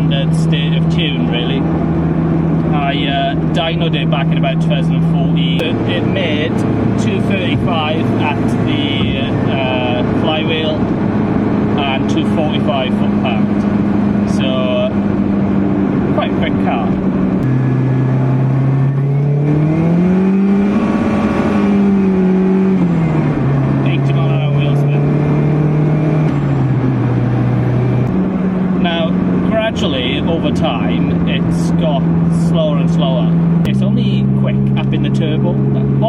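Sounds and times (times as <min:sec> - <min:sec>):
car engine while driving: 0:00.0 - 0:36.0
person talking: 0:02.7 - 0:10.8, 0:16.2 - 0:17.0, 0:28.8 - 0:36.0.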